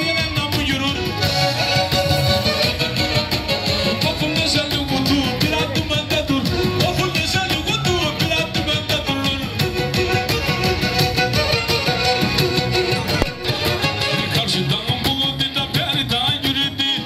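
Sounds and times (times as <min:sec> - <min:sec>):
bowed fiddle playing folk tune: 0:00.0 - 0:14.7
electronic keyboard with steady beat: 0:00.0 - 0:15.0.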